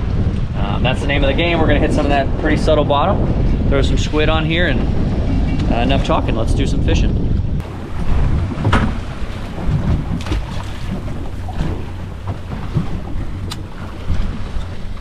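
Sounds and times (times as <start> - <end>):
water washing against boat hull: 0.0 - 15.0
wind buffeting microphone: 0.0 - 15.0.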